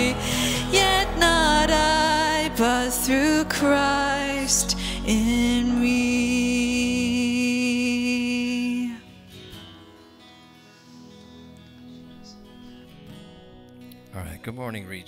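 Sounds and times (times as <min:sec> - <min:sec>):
singers holding final note: 0:00.0 - 0:07.1
acoustic guitar: 0:00.0 - 0:15.0
keyboard: 0:00.0 - 0:15.0.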